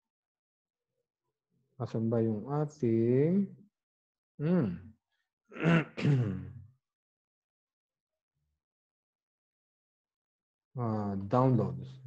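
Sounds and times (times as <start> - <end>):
man clearing his throat: 4.4 - 4.8, 5.6 - 6.6.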